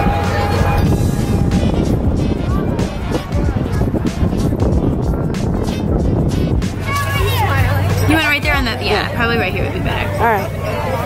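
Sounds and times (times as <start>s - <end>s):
background music: 0.0s - 11.0s
steady low rumble: 0.0s - 11.0s.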